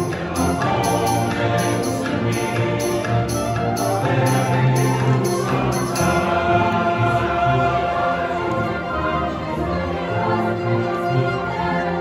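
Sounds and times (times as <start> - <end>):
jingling percussion beat: 0.0 - 7.2
choir singing held chords: 0.0 - 12.0
instrumental accompaniment: 0.0 - 12.0.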